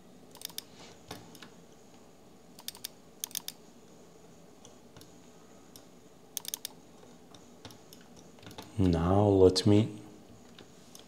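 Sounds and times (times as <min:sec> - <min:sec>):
keyboard and mouse clicks: 0:00.3 - 0:01.6, 0:02.6 - 0:03.6, 0:05.8 - 0:09.0.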